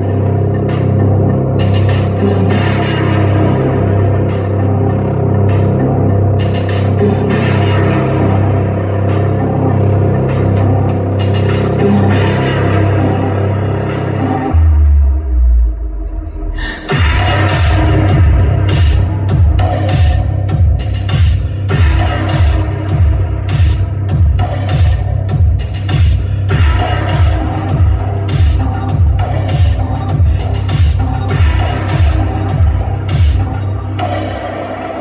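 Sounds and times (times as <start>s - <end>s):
dark electronic music over pa: 0.0s - 35.0s
electronic percussion: 0.0s - 35.0s
synth bass line: 0.0s - 35.0s
deep kick drum: 16.9s - 33.4s.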